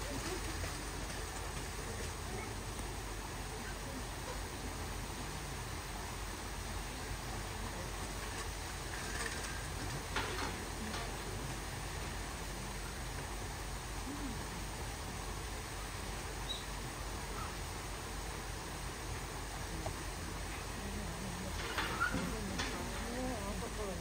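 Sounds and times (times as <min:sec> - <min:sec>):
steady background noise: 0:00.0 - 0:24.0.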